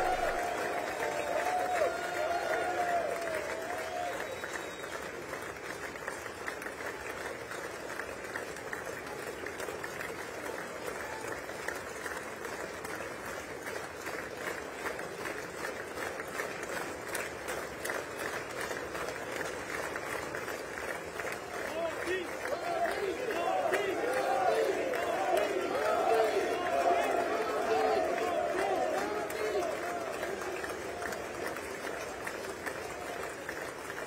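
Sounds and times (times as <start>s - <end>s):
crowd voices: 0.0s - 3.1s, 21.7s - 33.9s
crowd applause: 0.0s - 34.0s.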